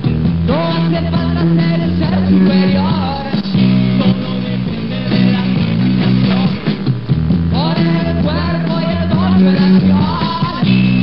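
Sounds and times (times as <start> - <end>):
electric guitar: 0.0 - 11.0
repeating bass line: 0.0 - 11.0.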